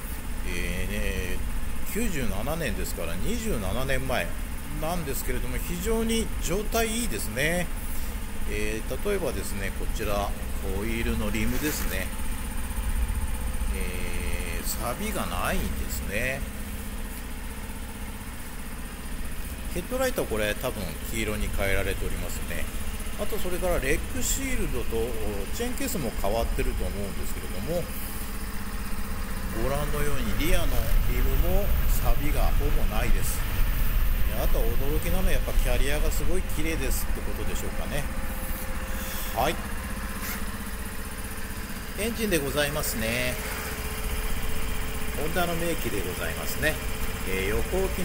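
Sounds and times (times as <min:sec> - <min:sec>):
motorcycle engine idling: 0:00.0 - 0:48.0.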